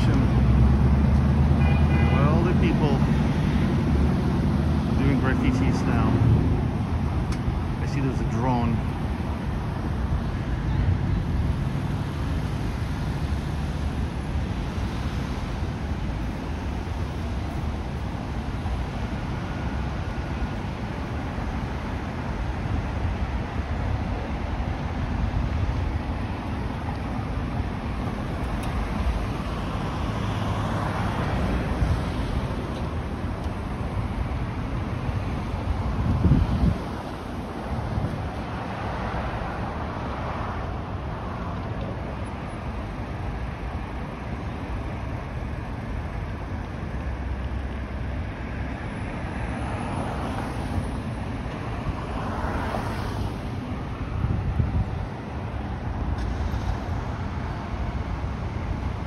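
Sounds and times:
cars passing: 0.0s - 59.0s
wind rumble on microphone: 2.6s - 59.0s.

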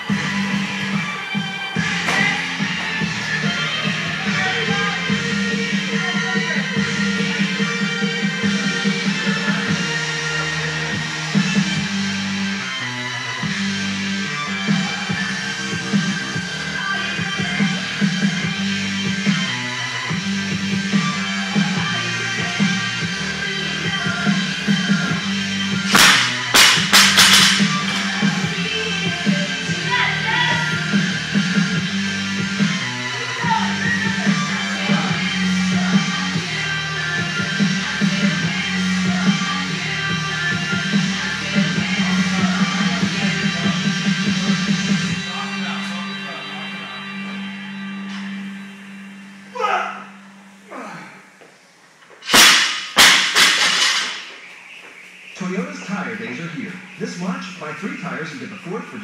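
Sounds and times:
rock music: 0.0s - 36.4s.

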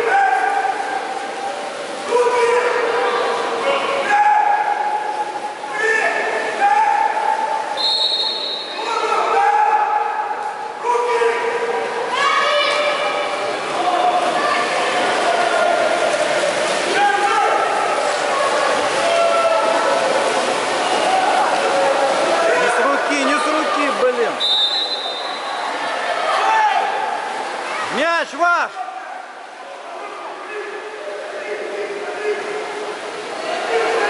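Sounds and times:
people shouting calls echoing: 0.0s - 1.1s, 2.0s - 20.1s, 21.0s - 29.4s
water splashing: 0.0s - 34.0s.

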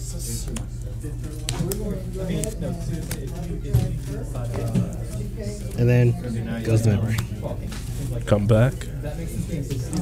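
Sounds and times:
chatter of voices: 0.0s - 10.0s
steady low hum: 0.0s - 10.0s
playing cards clicking: 0.5s - 5.8s.

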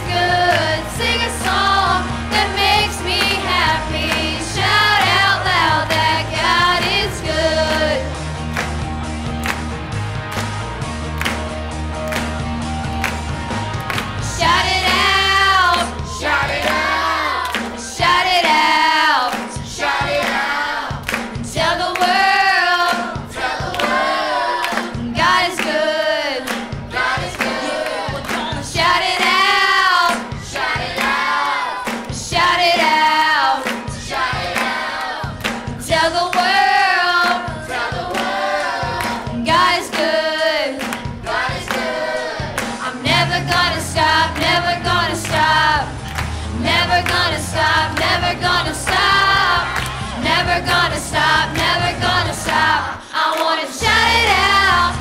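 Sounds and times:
vocal group singing: 0.0s - 8.8s, 13.0s - 55.0s
worship music accompaniment: 11.1s - 55.0s.

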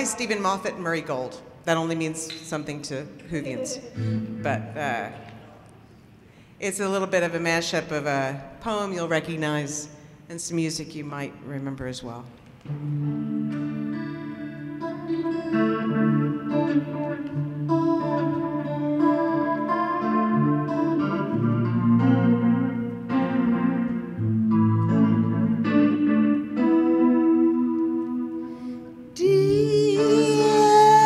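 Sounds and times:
electric guitar chords: 3.5s - 5.3s, 12.6s - 31.0s.

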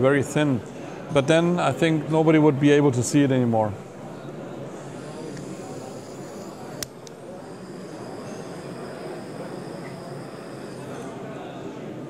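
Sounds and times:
room tone hiss: 3.1s - 12.0s
sharp click: 6.8s - 7.2s.

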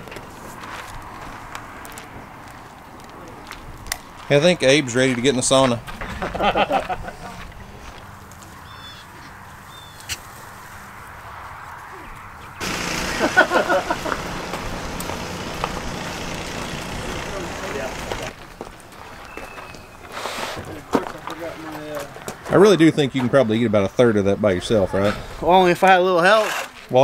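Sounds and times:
steady hiss: 12.6s - 18.3s.

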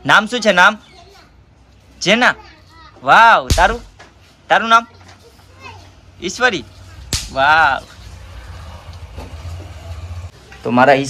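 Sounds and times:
sharp snap: 3.5s - 3.9s, 7.1s - 7.5s.

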